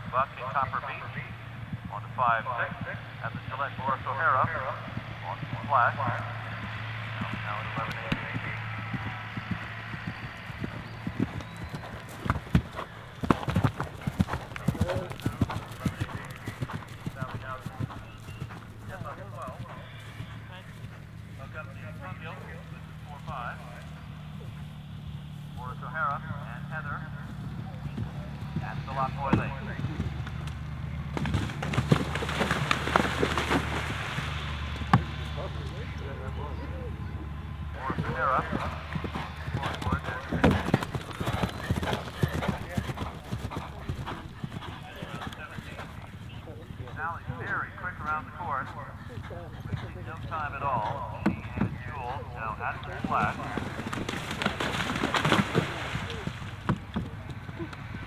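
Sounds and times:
horses galloping on turf: 0.0 - 58.0
horse splashing through water: 31.1 - 35.3, 52.9 - 57.3.

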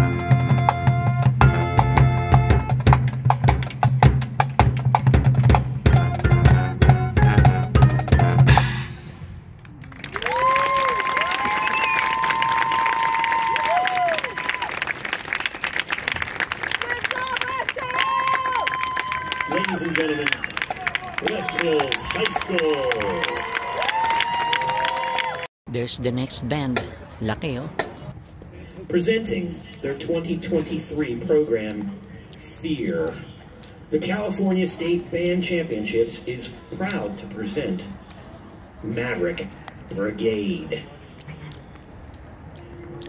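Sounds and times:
marching band drums and horns: 0.0 - 9.6
audience applauding: 9.6 - 25.5
people cheering woo: 9.9 - 15.0, 17.1 - 25.5.

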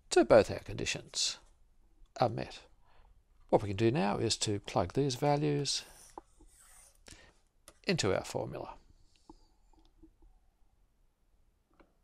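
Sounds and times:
stylus scratching on tablet: 5.8 - 7.0.

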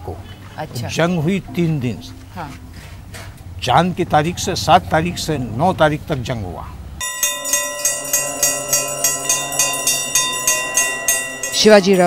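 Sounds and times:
metal bell struck by hand: 7.0 - 12.0.

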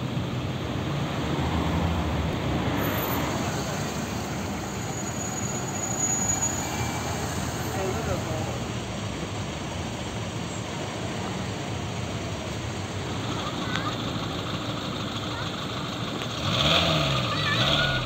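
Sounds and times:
car engines idling: 2.3 - 18.0
people's voices: 2.6 - 18.0.

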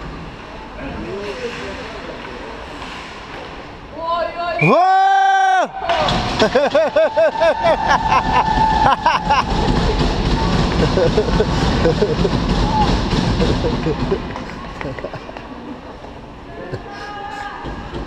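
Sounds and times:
spectators shouting: 4.6 - 10.4.

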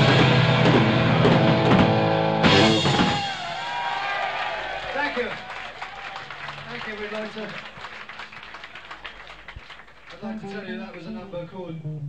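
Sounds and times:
audience clapping: 3.2 - 11.2.

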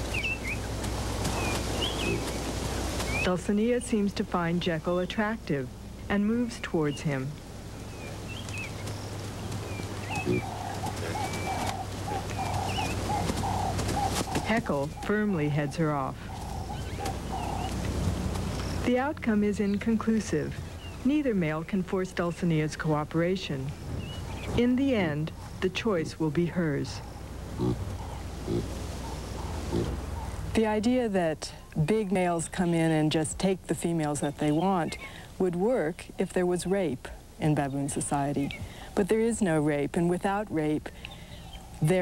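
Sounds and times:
birds chirping and warbling: 0.0 - 42.0
low background rumble: 0.0 - 42.0
bird short low call: 10.2 - 14.2
baboon grunting: 10.2 - 14.4, 27.5 - 30.5.

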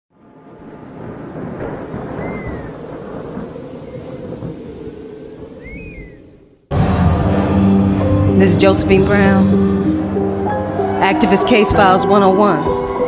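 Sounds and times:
rain: 0.1 - 6.2
rumbling thunder: 0.2 - 10.2.

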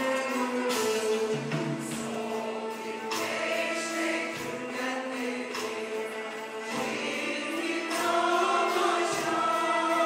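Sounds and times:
instrumental accompaniment: 0.0 - 10.0
mixed choir singing: 0.0 - 10.0.

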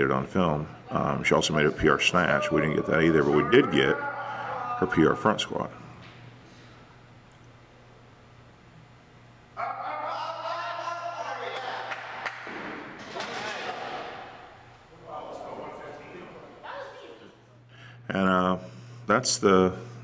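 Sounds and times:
low steady hum: 0.0 - 20.0
voices shouting encouragement: 1.6 - 5.4, 9.6 - 12.3.

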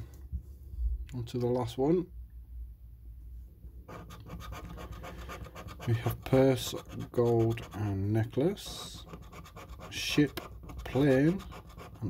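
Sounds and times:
scratching a scratch card: 3.9 - 12.0.

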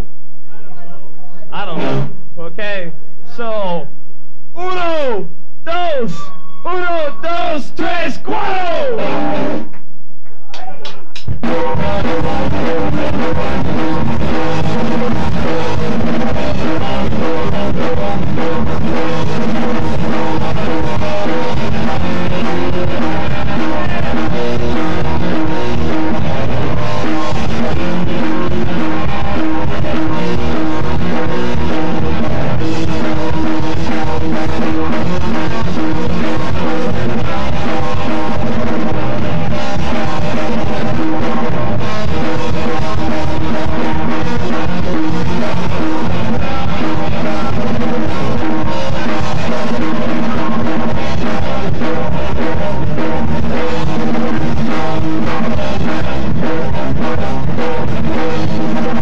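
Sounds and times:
electric guitar: 0.0 - 2.3, 7.8 - 59.0
bass guitar: 0.0 - 59.0
drum kit: 1.5 - 3.9, 4.6 - 59.0.

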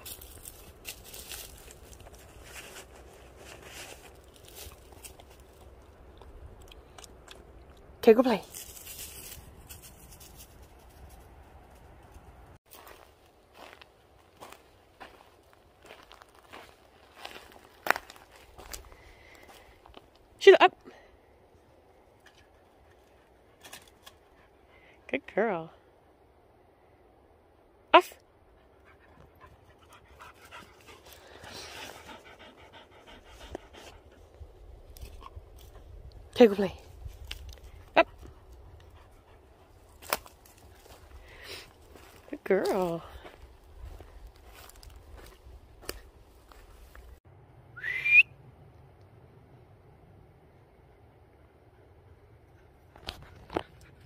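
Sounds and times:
footsteps on dry forest litter: 0.0 - 5.8, 8.4 - 11.2, 12.7 - 20.2, 39.5 - 47.2
person whistling rising whistle: 47.8 - 48.3.

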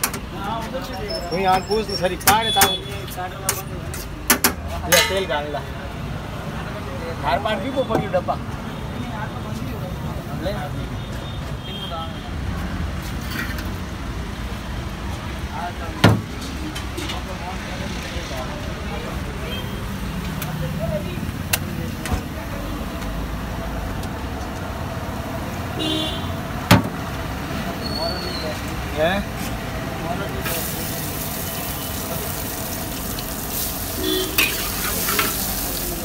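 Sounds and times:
street noise: 0.0 - 36.0
gas burner rumble: 30.2 - 36.0.

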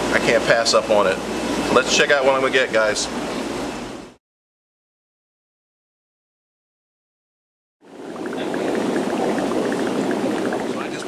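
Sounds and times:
aquarium water bubbling: 7.8 - 11.0.

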